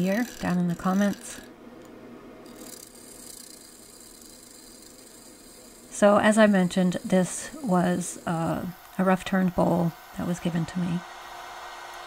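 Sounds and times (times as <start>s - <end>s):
gouge scraping wood on lathe: 0.0s - 1.5s.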